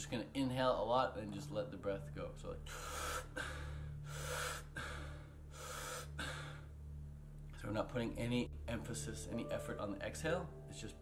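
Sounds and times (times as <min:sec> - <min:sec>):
man breathing rapidly: 0:02.7 - 0:06.8.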